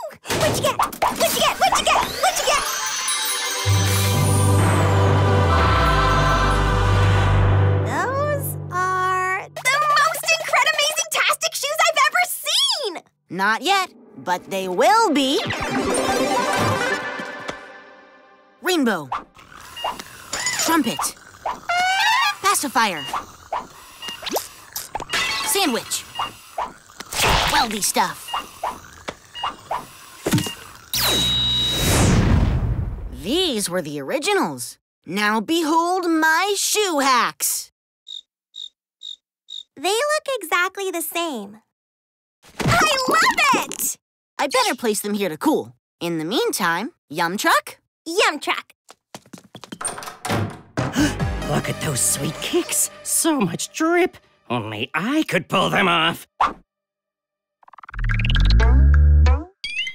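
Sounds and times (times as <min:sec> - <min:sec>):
character gasping: 0:50.9 - 0:51.3.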